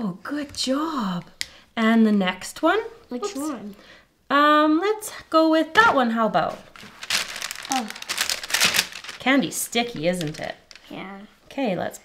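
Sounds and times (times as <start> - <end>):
parchment paper crinkling: 6.5 - 11.0.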